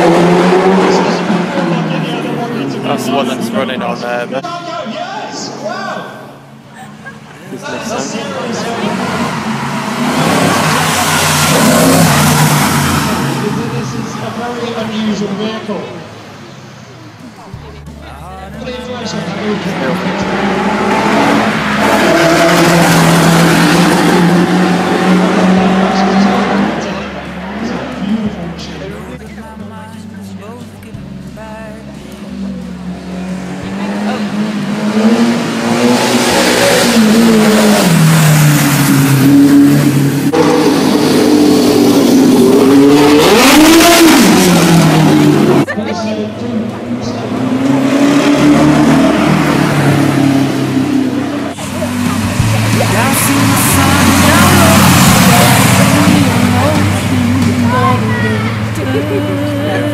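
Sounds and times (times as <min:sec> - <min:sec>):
cars racing past: 0:00.0 - 0:59.9.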